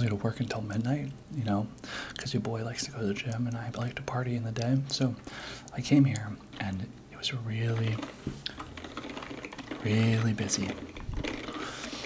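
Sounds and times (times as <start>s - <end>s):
keyboard typing: 7.7s - 12.0s.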